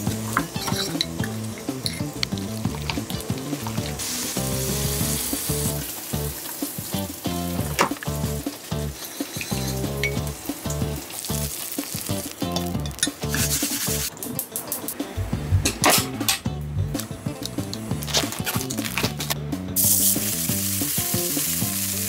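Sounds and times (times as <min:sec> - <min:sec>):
spoon stirring dressing: 0:00.0 - 0:05.2
sizzling hiss: 0:00.0 - 0:15.2, 0:17.0 - 0:22.0
background music: 0:00.0 - 0:22.0.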